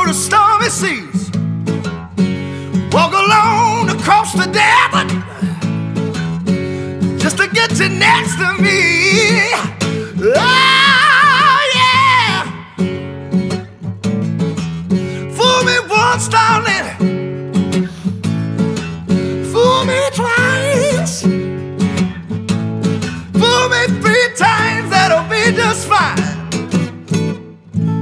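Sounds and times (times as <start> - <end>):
man singing soul vocal: 0.0 - 1.3, 2.8 - 5.8, 7.1 - 12.9, 15.2 - 17.1, 19.3 - 21.4, 23.3 - 26.6
acoustic guitar strummed chords: 0.0 - 28.0.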